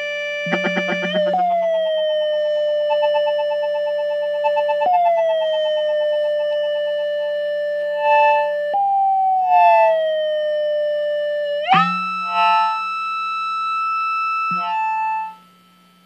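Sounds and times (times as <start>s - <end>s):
synthesizer tone sliding down: 0.0s - 2.4s, 9.4s - 10.5s, 14.5s - 15.4s
steady low hum: 0.2s - 2.8s
short tone blips: 0.5s - 1.6s, 8.0s - 8.5s, 9.5s - 10.0s.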